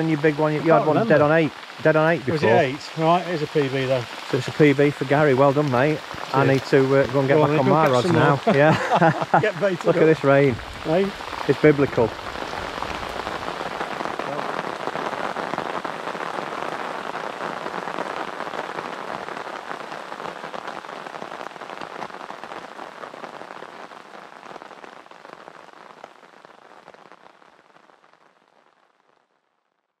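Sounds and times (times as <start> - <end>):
heavy rain on water: 0.0 - 29.6.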